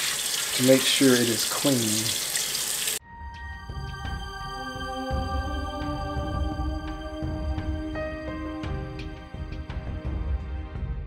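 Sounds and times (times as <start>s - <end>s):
background music: 3.0s - 11.0s.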